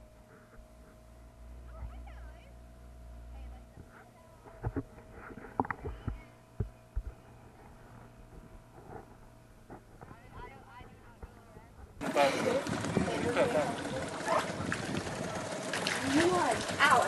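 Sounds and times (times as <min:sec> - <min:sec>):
outboard motor hum: 0:00.0 - 0:17.0.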